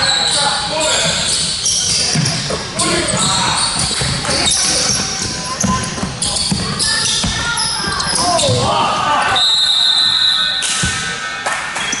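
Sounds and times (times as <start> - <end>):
players' voices: 0.0 - 9.6
sneakers squeaking: 0.0 - 12.0.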